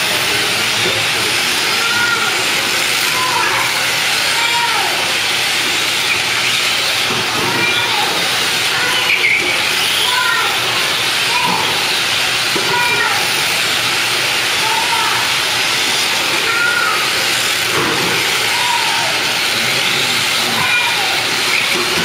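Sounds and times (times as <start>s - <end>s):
rc car motors hissing: 0.0s - 22.0s
rc car motors whining: 0.0s - 22.0s.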